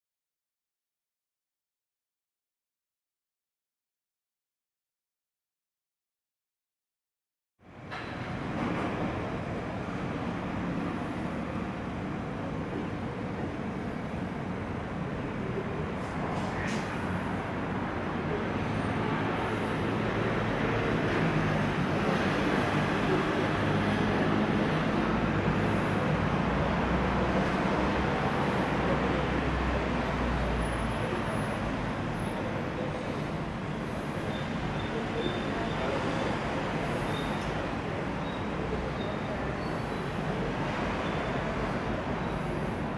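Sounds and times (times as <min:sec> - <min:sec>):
distant traffic: 0:07.6 - 0:42.9.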